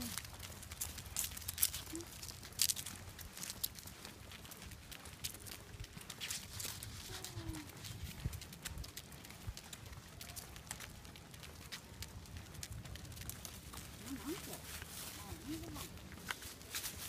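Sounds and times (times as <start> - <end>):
dog claws clicking on pavement: 0.0 - 15.1, 15.8 - 17.0
footsteps on pavement: 0.0 - 17.0.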